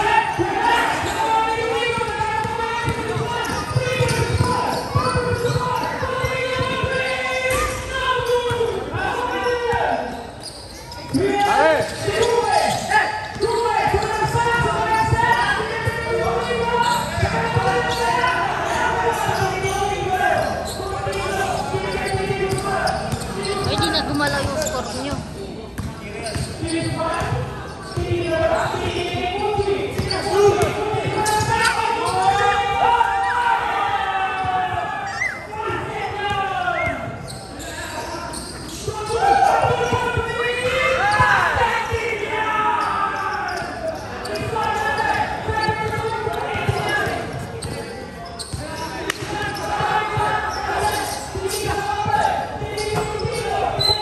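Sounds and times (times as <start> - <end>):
people talking and calling out: 0.0 - 54.0
shoes on hard court: 0.1 - 8.8
basketball bouncing: 1.9 - 8.8, 25.8 - 32.3.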